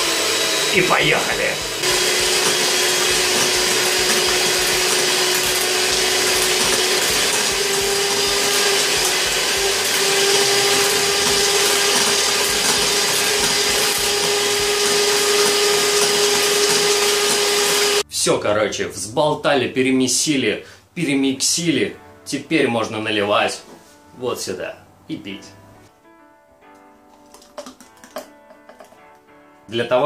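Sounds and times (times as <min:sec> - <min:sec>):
beaters whisking liquid: 0:00.0 - 0:18.0, 0:27.2 - 0:29.1
electric mixer motor whine: 0:00.0 - 0:18.0.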